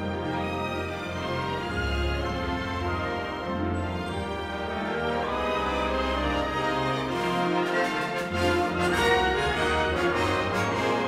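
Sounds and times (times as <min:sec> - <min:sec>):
symphony orchestra playing: 0:00.0 - 0:11.0.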